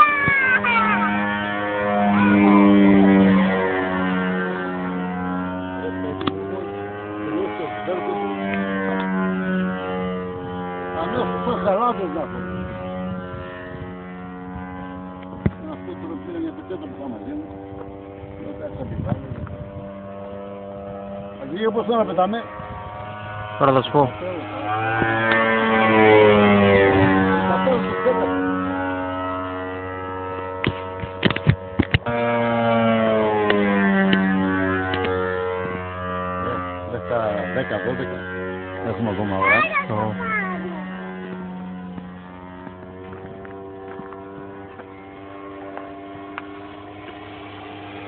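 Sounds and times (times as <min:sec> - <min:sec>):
model plane engine droning: 0:00.0 - 0:48.0.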